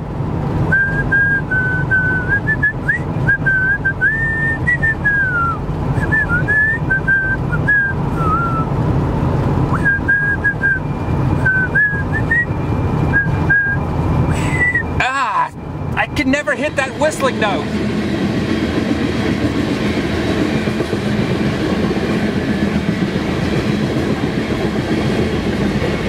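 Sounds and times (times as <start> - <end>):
car road rumble: 0.0 - 26.0
man whistling a tune: 0.7 - 8.8, 9.7 - 15.0.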